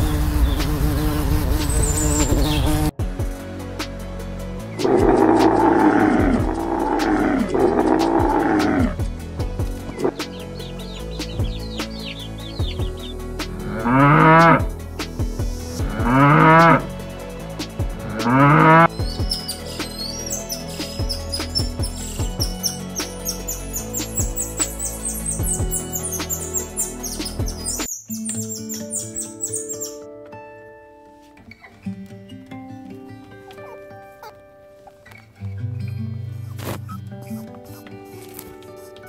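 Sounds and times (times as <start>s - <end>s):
soft background music: 0.1s - 39.0s
loud animal calls: 4.8s - 9.0s
high quick chirps: 18.8s - 30.0s.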